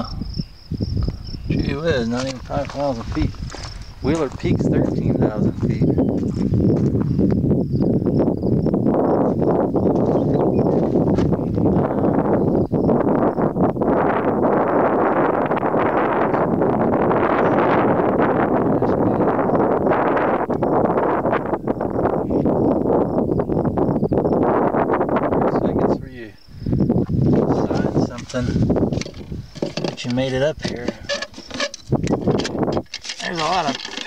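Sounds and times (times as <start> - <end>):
wind on microphone: 0.0 - 34.0.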